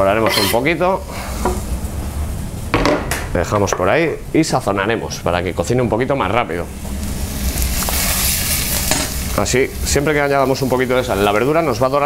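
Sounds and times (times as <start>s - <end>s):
vegetables sizzling in hot oil: 6.4s - 12.0s.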